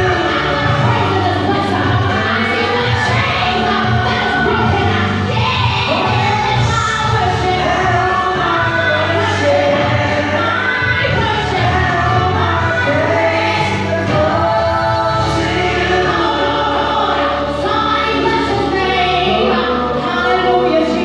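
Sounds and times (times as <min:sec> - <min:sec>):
choir-like voices: 0:00.0 - 0:21.0
musical accompaniment: 0:00.0 - 0:21.0
woman singing gospel song: 0:00.0 - 0:21.0.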